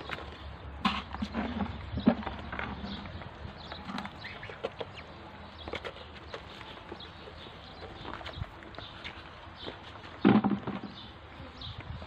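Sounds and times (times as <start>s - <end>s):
ducklings peeping: 2.0s - 10.2s.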